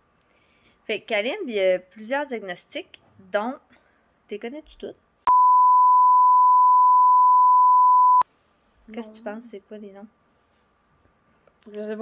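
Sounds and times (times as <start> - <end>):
conversation: 0.8 - 5.3, 8.7 - 12.0
censor bleep: 5.3 - 8.2.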